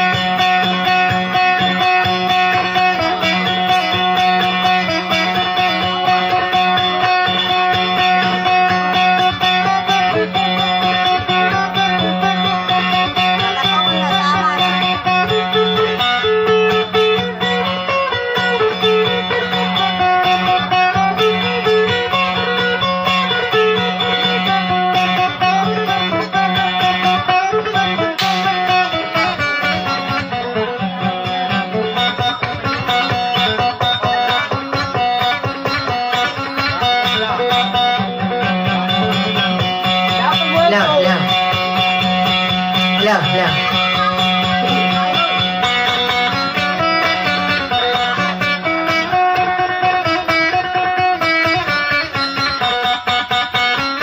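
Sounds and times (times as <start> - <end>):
plucked electric guitar melody: 0.0 - 54.0.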